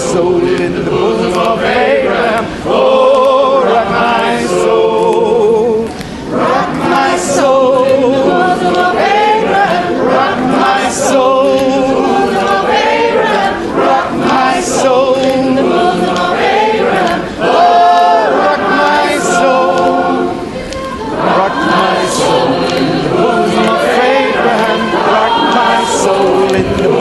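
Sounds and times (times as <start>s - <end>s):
gospel choir singing: 0.0s - 27.0s.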